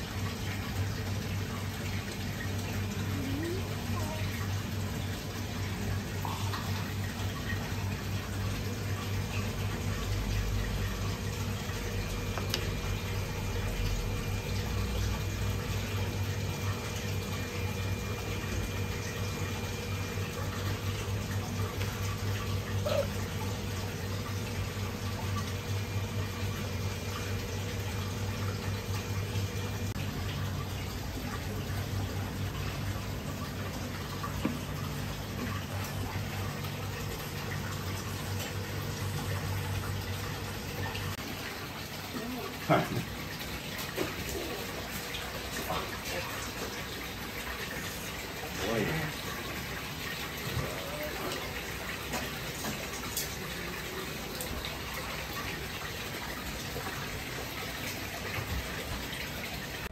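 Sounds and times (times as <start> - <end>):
low machine hum: 0.0 - 59.9
running water: 0.0 - 59.9.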